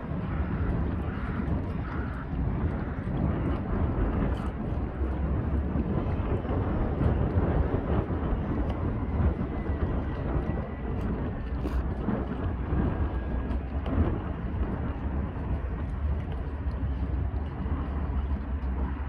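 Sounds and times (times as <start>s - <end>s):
distant ship engines: 0.0s - 19.0s
wind buffeting microphone: 0.0s - 19.0s.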